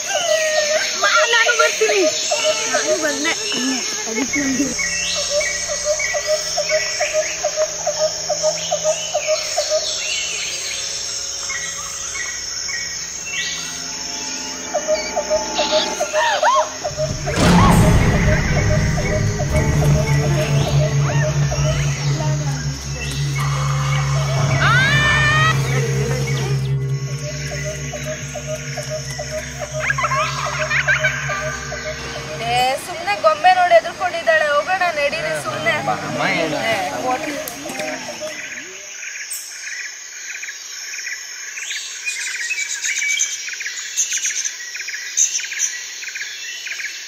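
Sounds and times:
frog croaking: 0:00.0 - 0:39.0
birds calling: 0:00.0 - 0:40.6
high insect drone: 0:00.0 - 0:47.0
high chirps: 0:01.6 - 0:34.4.

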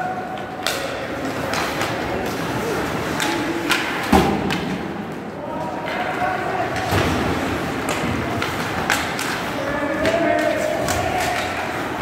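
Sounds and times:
puck and sticks knocking boards: 0:03.1 - 0:04.9, 0:05.8 - 0:12.0.

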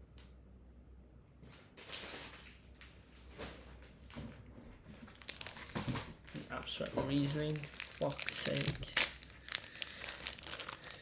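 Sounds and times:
crinkling: 0:01.8 - 0:11.0.

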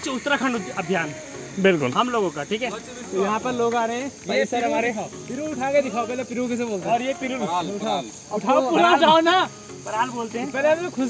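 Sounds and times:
insects chirring: 0:00.0 - 0:11.0
people talking: 0:00.0 - 0:11.0.

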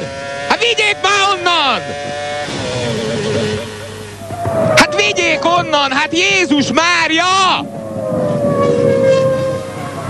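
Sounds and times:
racing cars passing at speed: 0:00.0 - 0:10.0.

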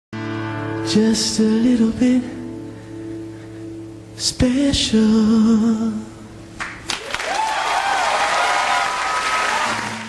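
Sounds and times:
sharp claps: 0:06.6 - 0:07.6
crowd applause: 0:06.6 - 0:10.0.

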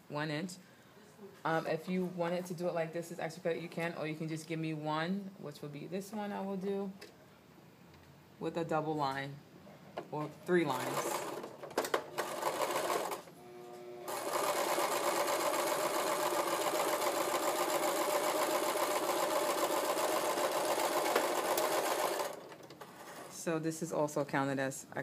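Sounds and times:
sewing machine stitching: 0:10.8 - 0:13.3, 0:14.1 - 0:23.4.

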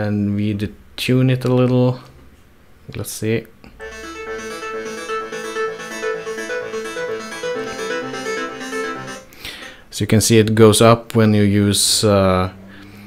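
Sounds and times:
synthesizer short notes: 0:03.8 - 0:09.8.

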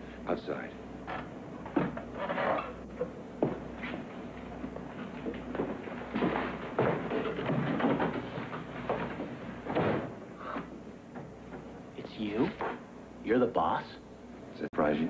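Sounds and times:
footsteps: 0:03.4 - 0:10.7
knocks: 0:05.6 - 0:10.2.

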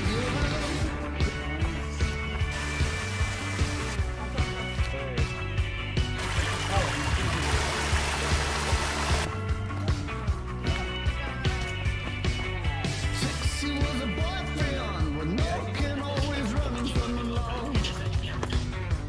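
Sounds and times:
rock music with drum beat: 0:00.0 - 0:19.0.

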